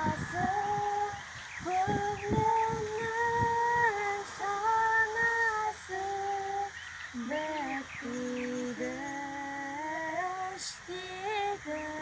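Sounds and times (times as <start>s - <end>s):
girl singing solo: 0.0s - 12.0s.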